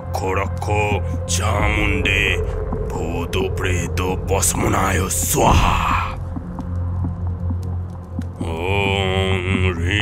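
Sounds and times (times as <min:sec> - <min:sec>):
man chanting: 0:00.0 - 0:06.2, 0:08.4 - 0:10.0
low steady drone: 0:00.0 - 0:10.0.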